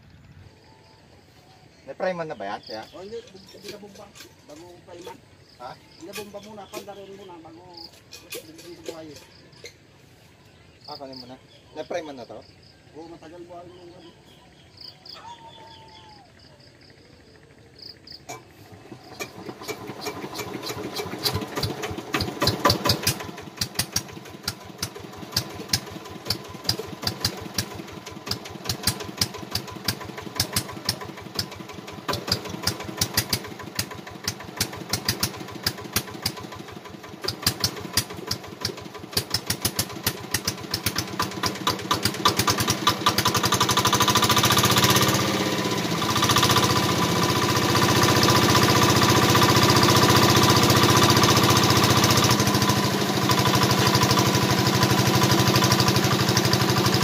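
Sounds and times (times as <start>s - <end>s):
diesel engine running: 15.7s - 57.0s.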